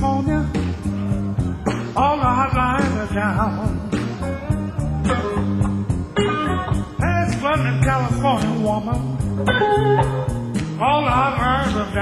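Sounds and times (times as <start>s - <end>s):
blues band playing: 0.0s - 12.0s
electric guitar bent notes: 3.9s - 7.0s, 9.1s - 11.0s.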